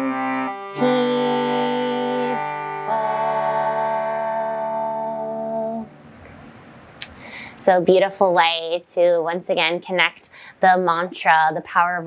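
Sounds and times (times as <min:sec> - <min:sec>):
harmonium chords: 0:00.0 - 0:06.1.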